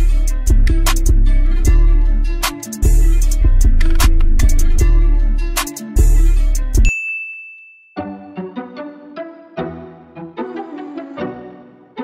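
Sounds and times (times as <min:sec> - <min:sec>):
trap beat with string-like notes: 0:00.0 - 0:06.8
high ding: 0:06.8 - 0:08.3.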